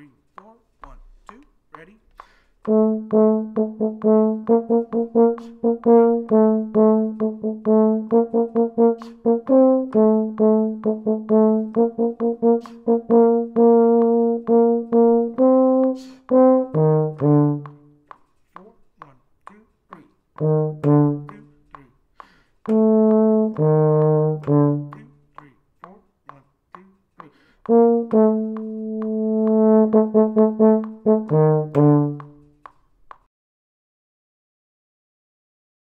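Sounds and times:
euphonium playing melody: 0:02.7 - 0:17.9, 0:20.4 - 0:21.4, 0:22.7 - 0:25.0, 0:27.7 - 0:32.4.

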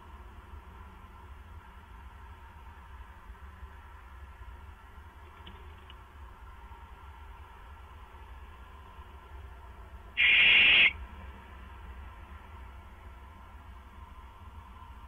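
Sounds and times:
barn owl screech: 0:10.2 - 0:10.9.

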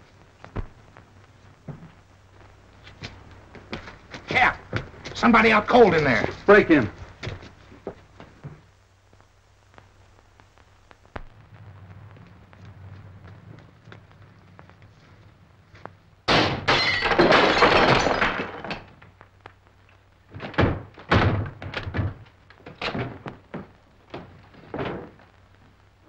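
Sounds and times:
glass shattering: 0:16.3 - 0:18.9.

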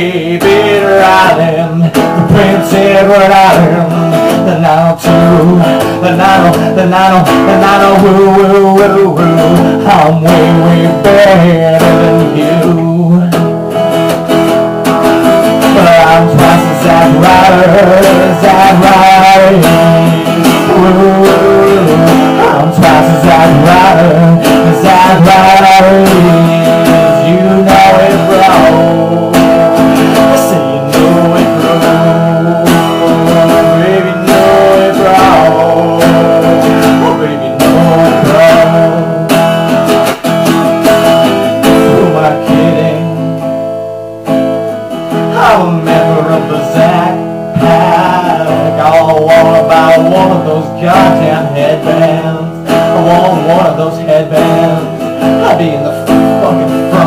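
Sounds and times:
man singing: 0:00.0 - 0:57.0
strummed acoustic guitar: 0:00.0 - 0:57.0.

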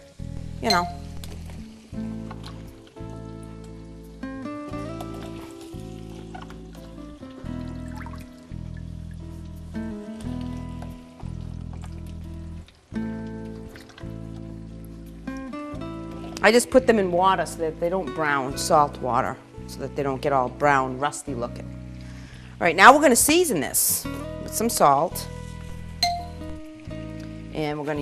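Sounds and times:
background music of held chords: 0:00.0 - 0:28.0.

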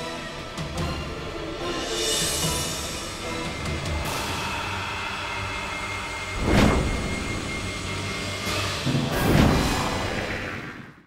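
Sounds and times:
low drone with held tones: 0:01.6 - 0:09.1
loud dramatic hit: 0:06.4 - 0:10.8.

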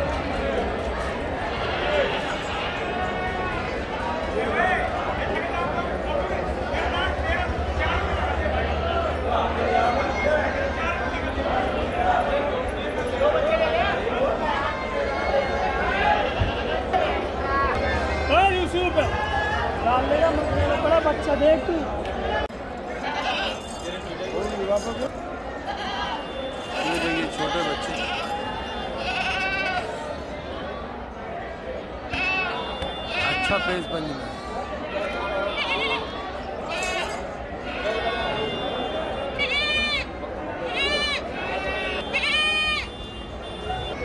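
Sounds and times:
crowd voices: 0:00.0 - 0:44.0
people talking: 0:00.0 - 0:44.0
goat kids bleating: 0:25.7 - 0:29.9, 0:40.7 - 0:42.8.

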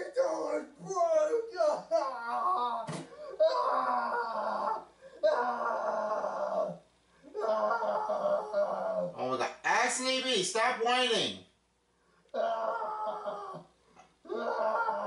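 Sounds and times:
young man wailing: 0:00.0 - 0:06.8, 0:07.4 - 0:09.2, 0:14.3 - 0:15.0.

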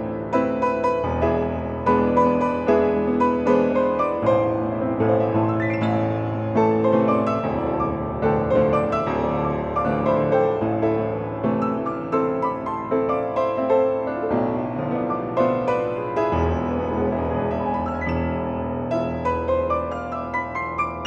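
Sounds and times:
grand piano flowing passage: 0:00.0 - 0:21.0.

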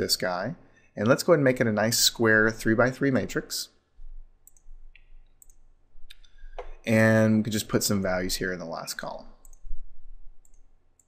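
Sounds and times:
computer mouse clicks: 0:04.4 - 0:06.8, 0:09.4 - 0:09.7, 0:10.4 - 0:11.0.

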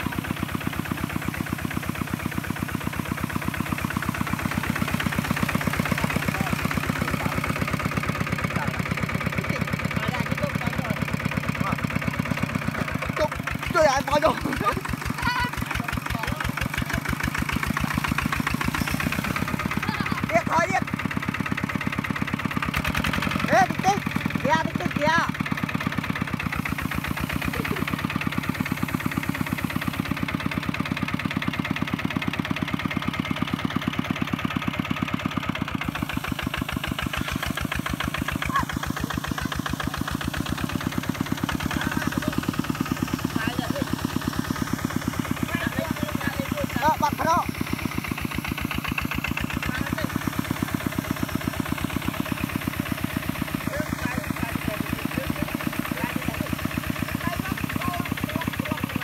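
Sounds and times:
diesel engine rapid putter: 0:00.0 - 0:59.0
person shouting: 0:38.4 - 0:38.8.

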